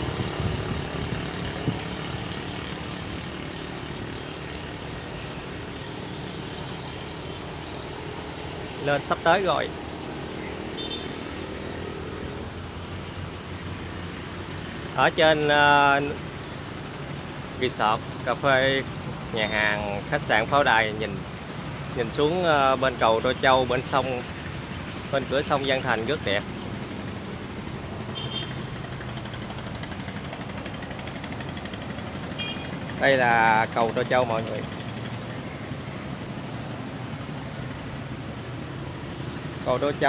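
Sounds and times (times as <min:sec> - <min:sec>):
distant engine rumble: 0:00.0 - 0:40.0.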